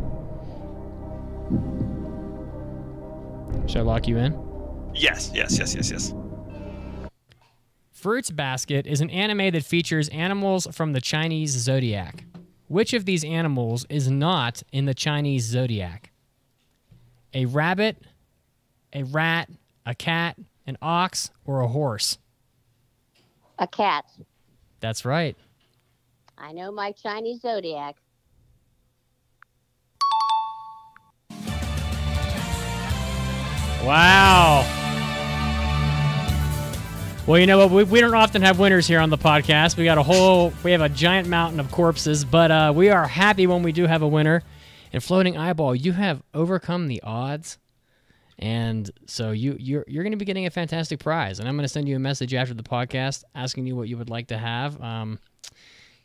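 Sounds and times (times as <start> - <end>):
tense music with pulsing beat: 0.0 - 7.1
short voice sound: 5.0 - 6.1, 33.8 - 34.7
bright chime sound effect: 30.0 - 31.0.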